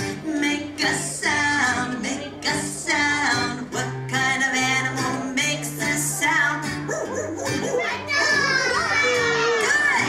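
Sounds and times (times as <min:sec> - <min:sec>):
background music: 0:00.0 - 0:10.0
children calling out and chattering: 0:05.8 - 0:10.0.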